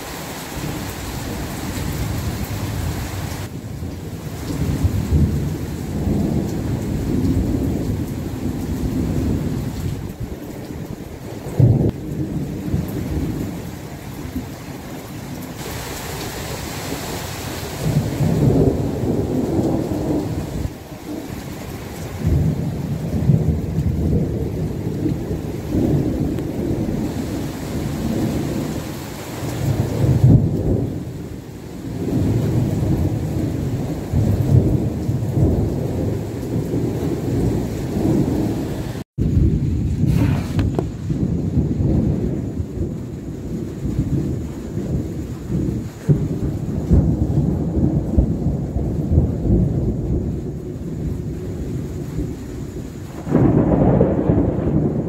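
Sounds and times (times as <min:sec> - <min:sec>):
rain hiss: 0:00.0 - 0:55.0
thunder rumbling: 0:00.0 - 0:55.0.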